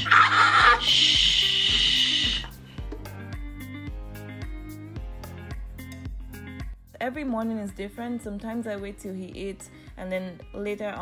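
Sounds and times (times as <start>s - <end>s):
background music with beat: 0.6s - 11.0s.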